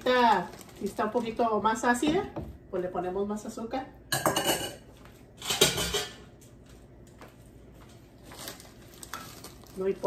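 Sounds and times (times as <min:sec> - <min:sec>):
dishes and cutlery clattering: 0:04.1 - 0:04.8, 0:05.4 - 0:06.2.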